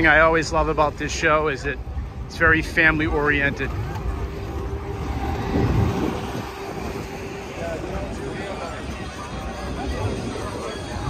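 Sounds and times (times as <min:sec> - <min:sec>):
low mechanical hum: 0:00.0 - 0:11.0
rumble: 0:00.0 - 0:11.0.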